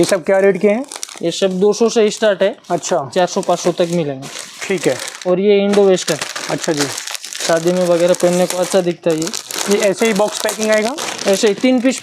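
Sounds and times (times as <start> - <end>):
person speaking: 0.0 - 12.0
plastic packaging crinkling: 0.0 - 12.0.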